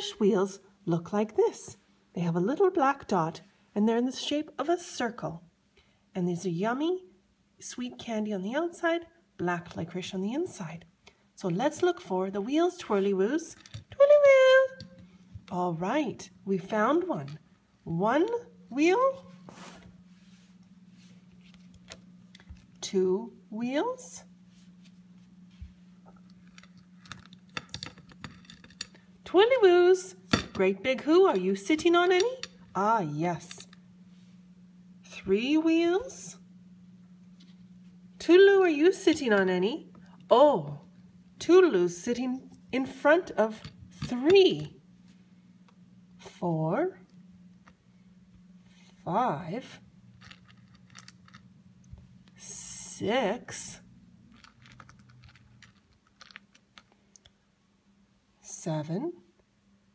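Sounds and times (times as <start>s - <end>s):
sweets clicking and clattering on plate: 26.2s - 29.0s, 50.1s - 51.5s, 54.3s - 57.0s.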